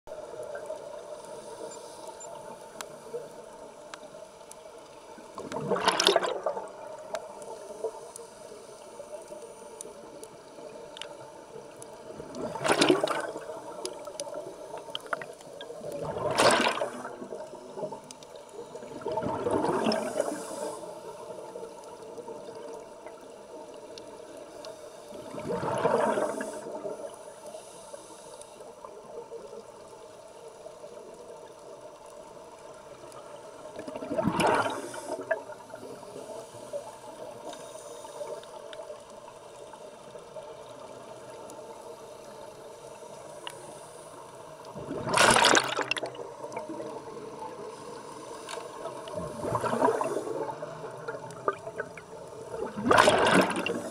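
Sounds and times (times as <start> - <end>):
rushing bubbles underwater: 5.3 - 7.4, 11.5 - 23.7, 25.2 - 27.0, 33.6 - 35.9, 44.6 - 47.9, 48.6 - 53.9.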